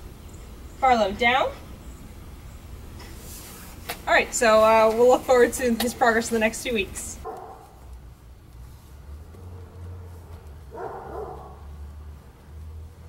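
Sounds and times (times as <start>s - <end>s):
low steady rumble: 0.0s - 13.0s
dog barking faintly: 7.2s - 7.8s, 9.3s - 11.8s.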